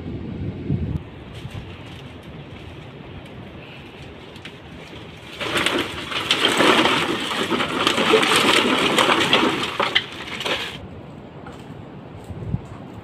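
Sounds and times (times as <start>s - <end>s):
plastic bottles clattering: 4.9s - 10.8s.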